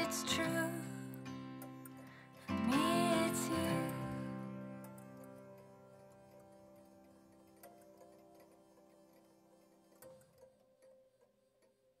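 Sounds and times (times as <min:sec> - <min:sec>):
background music: 0:00.0 - 0:07.9
soft regular ticks: 0:03.6 - 0:12.0.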